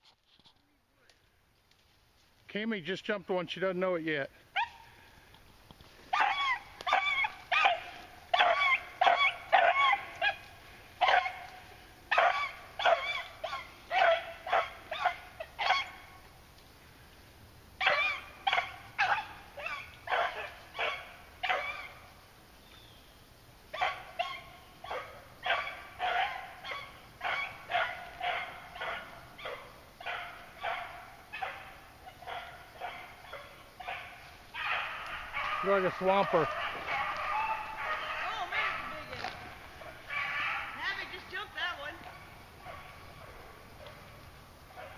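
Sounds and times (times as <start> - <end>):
hounds baying: 4.5 - 5.1, 6.0 - 16.3, 17.8 - 22.1, 23.7 - 44.9.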